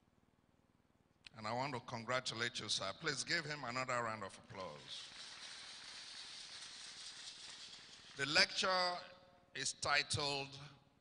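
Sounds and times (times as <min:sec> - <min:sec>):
audience applauding: 0:05.0 - 0:08.6.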